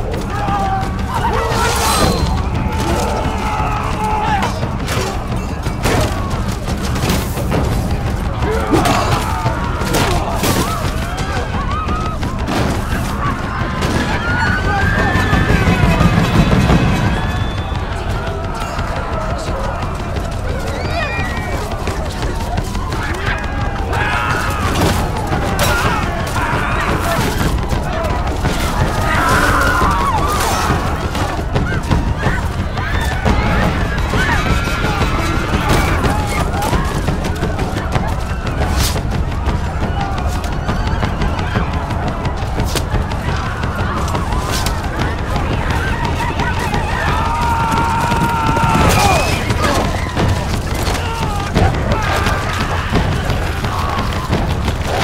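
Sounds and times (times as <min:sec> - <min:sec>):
knocks and clatter: 0:00.0 - 0:55.0
voices screaming and shouting: 0:00.0 - 0:55.0.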